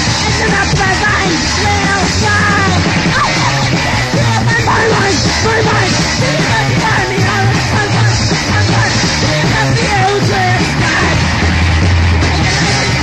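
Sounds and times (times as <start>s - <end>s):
distorted electric guitar: 0.0s - 13.0s
drums: 0.0s - 13.0s
person yelling vocals: 0.3s - 7.3s.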